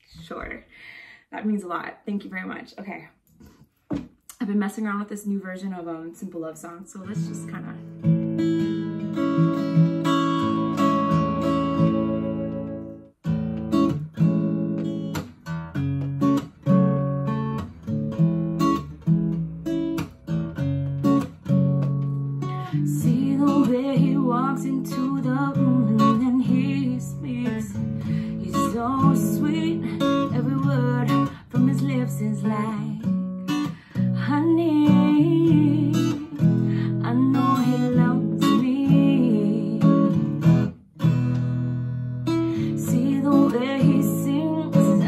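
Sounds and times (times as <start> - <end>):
acoustic guitar strumming chords: 7.2 - 45.0.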